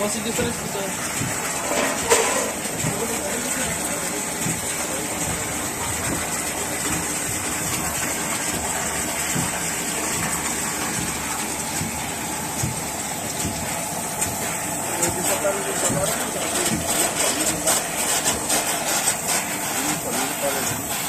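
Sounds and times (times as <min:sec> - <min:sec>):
pump running: 0:00.0 - 0:21.0
water pouring into trough: 0:00.0 - 0:21.0.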